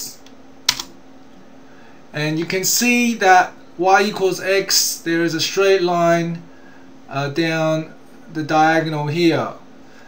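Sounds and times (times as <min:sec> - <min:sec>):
faint steady hum: 0:00.0 - 0:10.0
keyboard keystroke click: 0:00.2 - 0:00.9.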